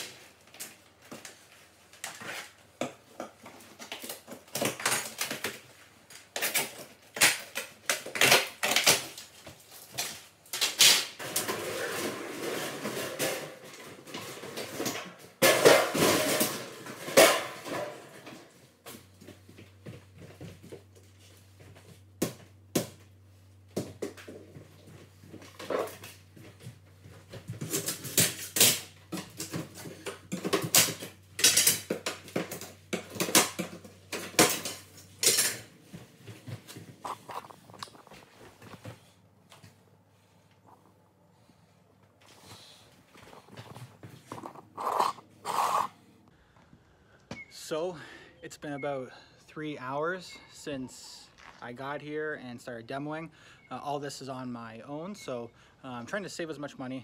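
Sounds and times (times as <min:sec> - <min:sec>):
rustling: 0:34.8 - 0:46.2.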